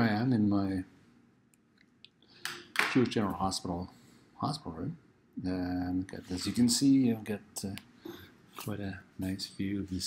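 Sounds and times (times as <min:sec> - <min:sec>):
man speaking: 0:00.0 - 0:00.9, 0:02.8 - 0:08.0, 0:08.6 - 0:10.0
breath: 0:08.0 - 0:08.4.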